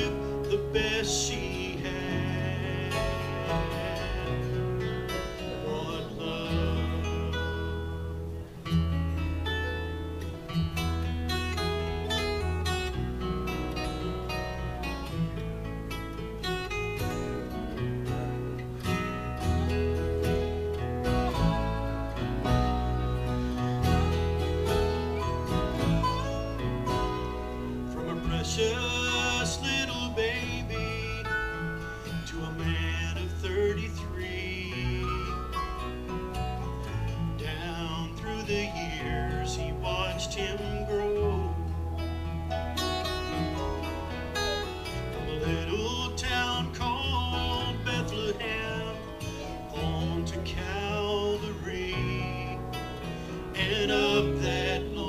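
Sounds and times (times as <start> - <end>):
acoustic guitar strumming: 0.0 - 55.0
electric bass line: 0.0 - 55.0
electric guitar: 0.0 - 55.0
keyboard: 0.0 - 55.0.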